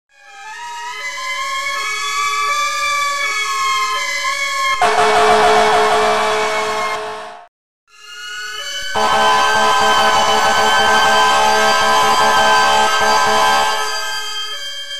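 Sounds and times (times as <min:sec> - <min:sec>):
fire truck siren wailing: 0:00.2 - 0:07.5, 0:08.8 - 0:14.9
two-tone siren: 0:00.2 - 0:07.5, 0:08.2 - 0:14.9
loud air horn blast: 0:04.8 - 0:07.5, 0:09.0 - 0:14.3.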